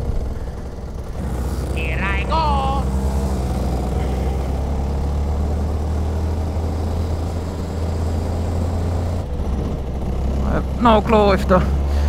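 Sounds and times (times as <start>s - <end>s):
go-kart engine running hard: 0.0s - 12.0s.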